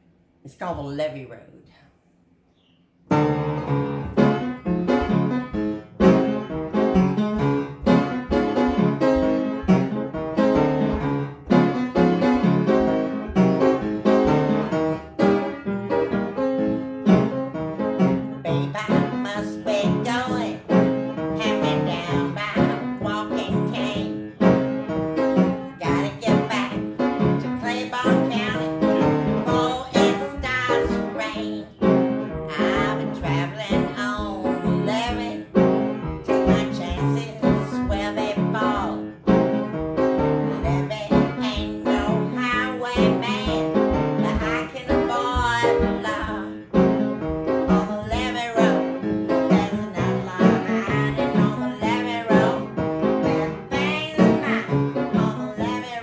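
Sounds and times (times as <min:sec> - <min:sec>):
upright piano playing blues: 0:03.0 - 0:56.0
woman singing: 0:18.4 - 0:24.3, 0:25.7 - 0:35.6, 0:36.2 - 0:39.1, 0:40.4 - 0:46.7, 0:47.6 - 0:56.0.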